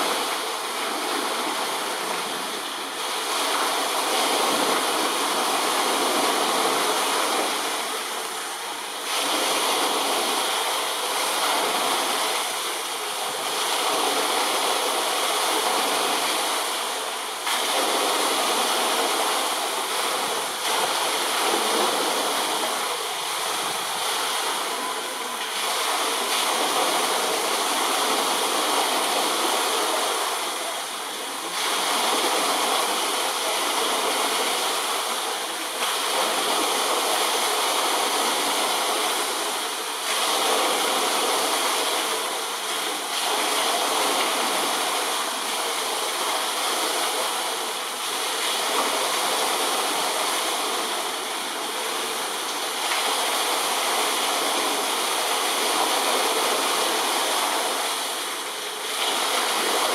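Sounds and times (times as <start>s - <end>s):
running water rushing: 0.0s - 59.9s.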